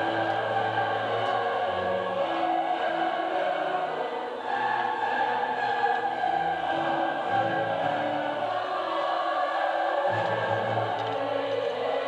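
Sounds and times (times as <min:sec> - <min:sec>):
choir singing sustained notes: 0:00.0 - 0:12.0.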